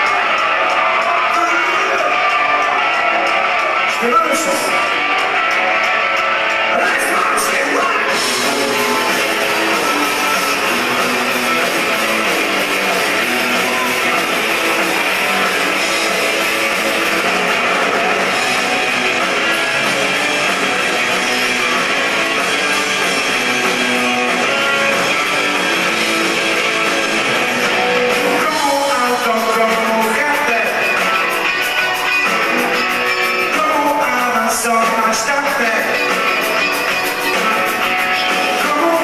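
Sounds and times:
rock band playing live: 0.0 - 39.0.

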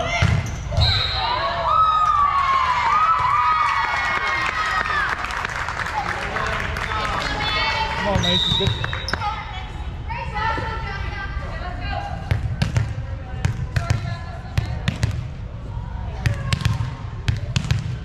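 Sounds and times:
high whistle: 8.2 - 9.2.

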